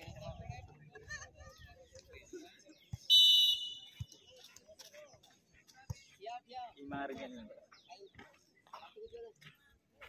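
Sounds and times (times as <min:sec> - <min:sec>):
referee's whistle blast: 0:03.1 - 0:03.9.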